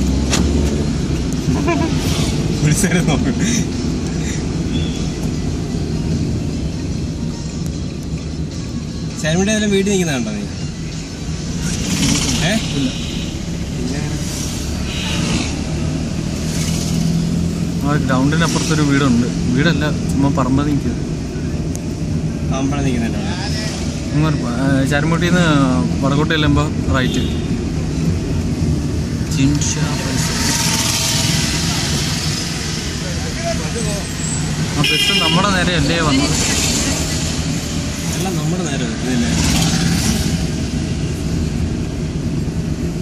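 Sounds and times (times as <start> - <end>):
car engine and road noise: 0.0 - 43.0.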